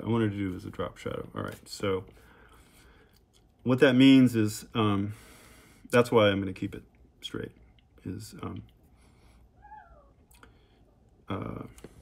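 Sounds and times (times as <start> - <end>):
faint cat meow: 9.6 - 10.2.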